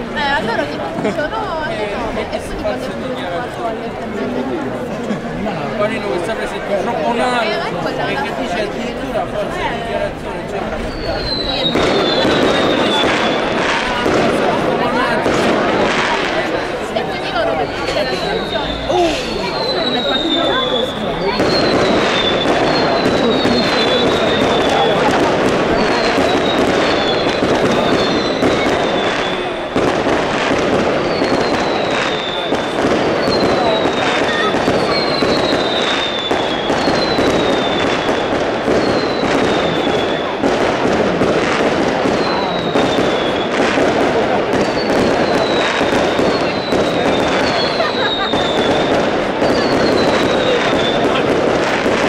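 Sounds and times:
whistling fireworks: 0:02.4 - 0:04.8, 0:05.4 - 0:52.0
rapid barrage of firework bangs: 0:10.2 - 0:18.7, 0:19.3 - 0:52.0.

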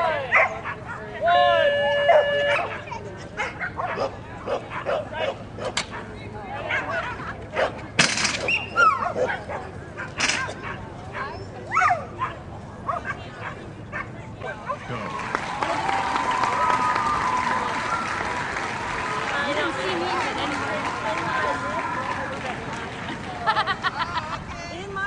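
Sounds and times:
crowd voices: 0:00.0 - 0:25.0
dog yipping and whining: 0:08.4 - 0:09.5.

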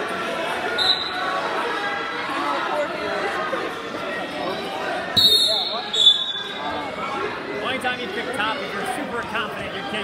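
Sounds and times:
chatter of voices in a gym: 0:00.0 - 0:10.0
referee's whistle blasts: 0:00.8 - 0:01.2, 0:05.2 - 0:06.6.

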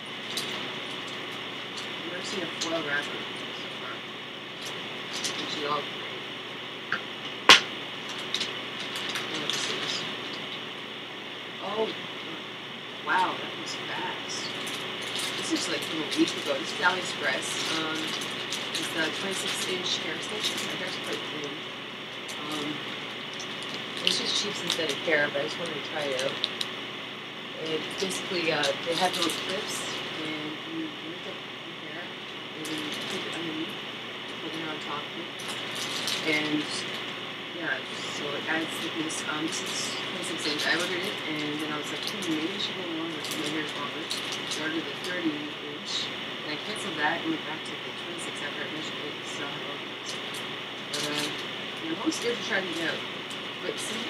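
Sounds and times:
recording hiss: 0:00.0 - 0:54.0
woman talking quietly: 0:02.0 - 0:04.0, 0:05.2 - 0:06.1, 0:09.2 - 0:10.2, 0:11.6 - 0:12.4, 0:13.1 - 0:14.6, 0:15.2 - 0:21.6, 0:22.3 - 0:22.8, 0:24.0 - 0:26.5, 0:27.6 - 0:33.8, 0:34.4 - 0:35.4, 0:36.0 - 0:36.9, 0:37.6 - 0:50.2, 0:50.9 - 0:53.0, 0:53.6 - 0:54.0
plastic package crinkling: 0:07.5 - 0:10.5, 0:14.5 - 0:16.8, 0:17.4 - 0:21.3, 0:22.3 - 0:26.7, 0:35.4 - 0:37.1, 0:40.4 - 0:45.1.

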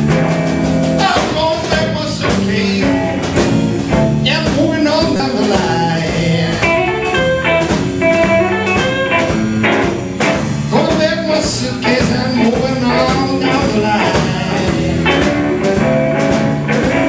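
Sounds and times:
blues band playing: 0:00.0 - 0:17.0
guitar: 0:00.0 - 0:17.0.

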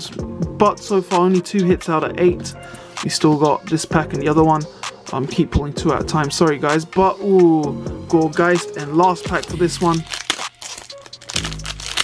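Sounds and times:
background music: 0:00.0 - 0:12.0
foil wrapper tearing and crinkling: 0:09.3 - 0:12.0.

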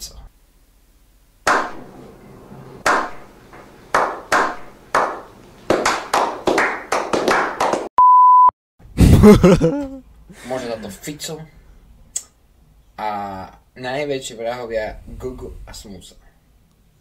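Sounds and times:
slow hand claps: 0:03.9 - 0:07.9.

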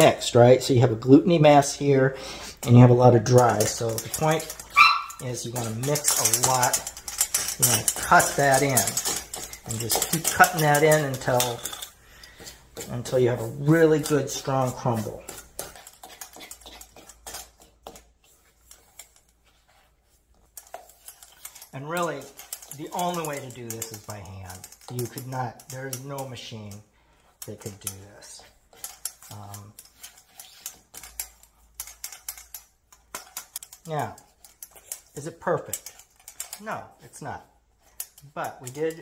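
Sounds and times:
fork scraping metal bowl: 0:01.8 - 0:39.0.

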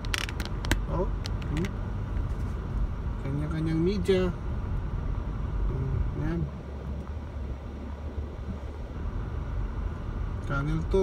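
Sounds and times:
clicks and rattles: 0:00.0 - 0:01.7
low road rumble: 0:00.0 - 0:11.0.

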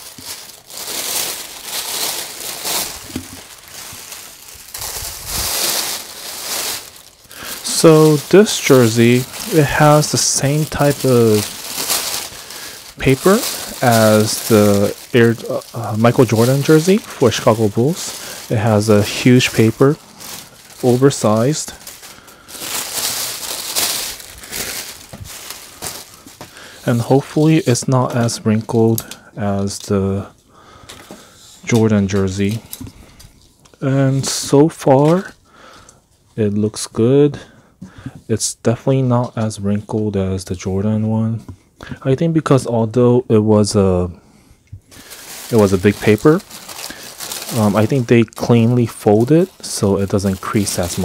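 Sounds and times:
fabric rustling: 0:00.0 - 0:27.0, 0:45.0 - 0:47.9
paper wrapping crinkling: 0:00.0 - 0:29.9, 0:44.9 - 0:51.0.

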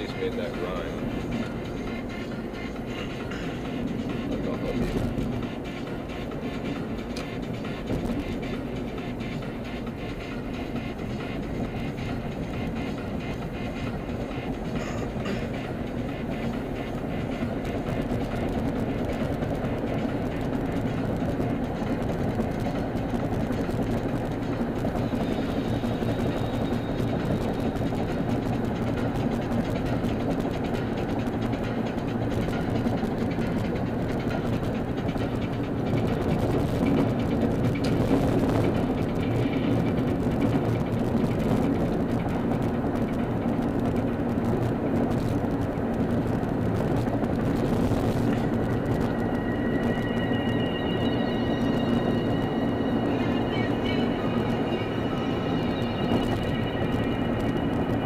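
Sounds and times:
road and engine noise in car: 0:00.0 - 0:58.0.

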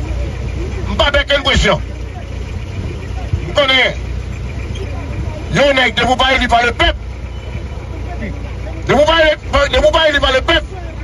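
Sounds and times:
low background rumble: 0:00.0 - 0:11.0
man speaking: 0:00.9 - 0:01.8, 0:03.5 - 0:04.0, 0:05.5 - 0:07.0, 0:08.9 - 0:10.7.

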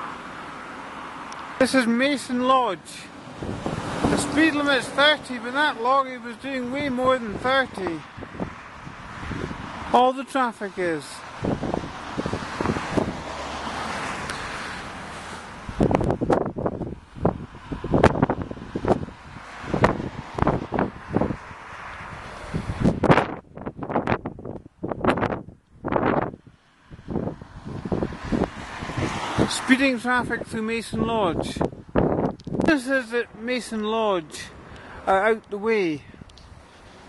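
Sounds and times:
car passing: 0:00.0 - 0:37.0
wind buffeting microphone: 0:03.2 - 0:05.2, 0:06.6 - 0:09.9, 0:11.2 - 0:37.0.

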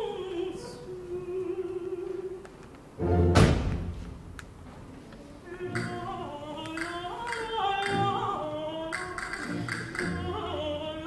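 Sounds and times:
woman singing opera: 0:00.0 - 0:02.5, 0:05.4 - 0:11.0
sharp clicks: 0:06.6 - 0:08.0.

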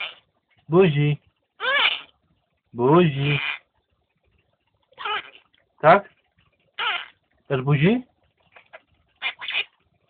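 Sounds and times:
parrot high-pitched speech-like calls: 0:01.6 - 0:02.1, 0:03.1 - 0:03.6, 0:05.0 - 0:05.4, 0:06.8 - 0:07.2, 0:09.2 - 0:09.7.

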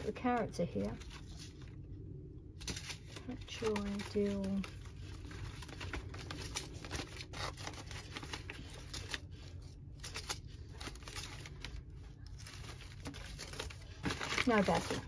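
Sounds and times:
paper seed packets rustling: 0:02.6 - 0:15.0.

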